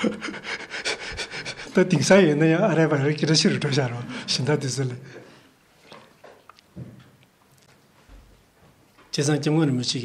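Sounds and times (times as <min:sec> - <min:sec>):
man laughing breathily: 0:00.0 - 0:01.8
man speaking: 0:01.7 - 0:05.2.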